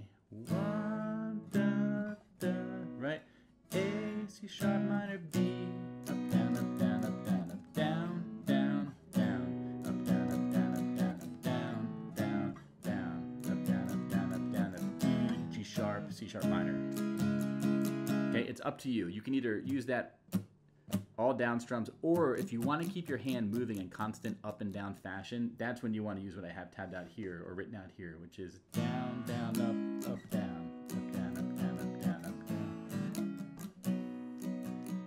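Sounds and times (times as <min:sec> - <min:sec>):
acoustic guitar strumming: 0:00.4 - 0:18.5, 0:22.1 - 0:24.4, 0:28.7 - 0:35.0.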